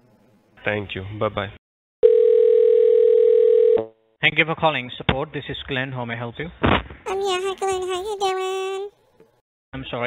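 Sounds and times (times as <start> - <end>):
telephone dial tone: 2.0 - 3.8.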